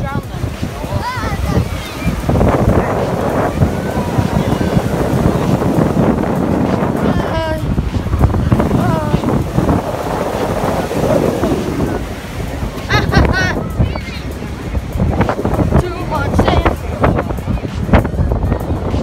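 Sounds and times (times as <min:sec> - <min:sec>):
surf washing up sand: 0:00.0 - 0:19.0
voices calling out: 0:00.0 - 0:19.0
wind buffeting microphone: 0:00.0 - 0:19.0.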